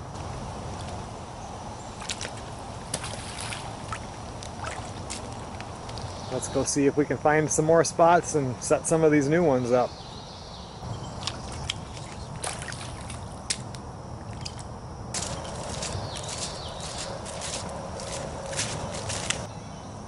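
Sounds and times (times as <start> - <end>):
undergrowth brushing and rustling: 0.2 - 6.5, 15.1 - 19.5
footsteps snapping and crunching: 2.0 - 6.3, 11.1 - 19.5.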